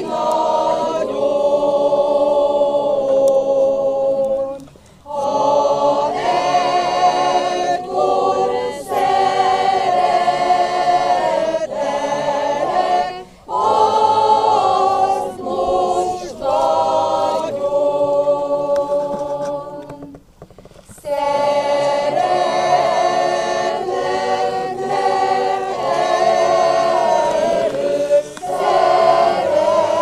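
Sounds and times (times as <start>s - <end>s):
mixed choir singing a hymn: 0.0s - 20.2s, 21.0s - 30.0s.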